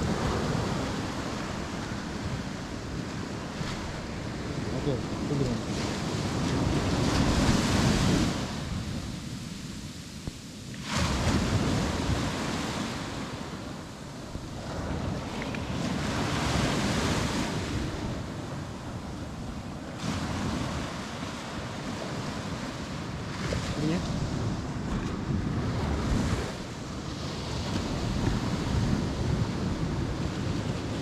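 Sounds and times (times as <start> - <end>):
sea waves breaking: 0.0 - 31.0
wind buffeting microphone: 0.0 - 31.0.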